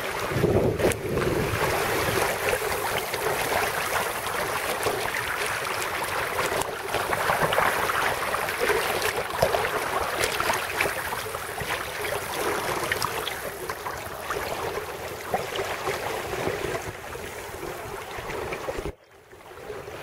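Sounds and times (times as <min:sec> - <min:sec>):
water rushing along a hull: 0:00.0 - 0:20.0.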